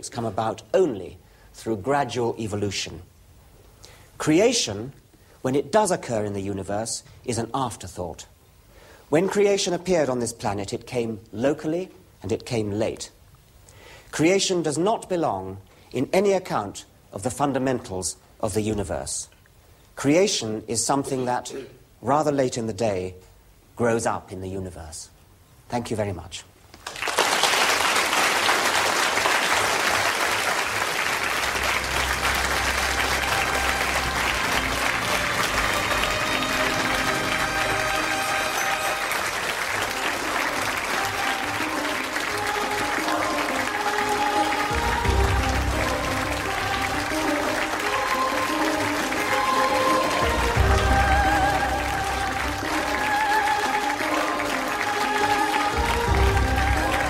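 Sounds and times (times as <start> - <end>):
audience applauding: 26.8 - 57.0.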